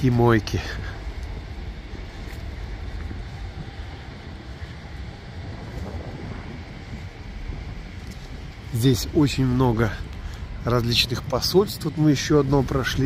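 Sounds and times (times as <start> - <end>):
faint street hiss: 0.0 - 13.0
wind buffeting microphone: 0.0 - 13.0.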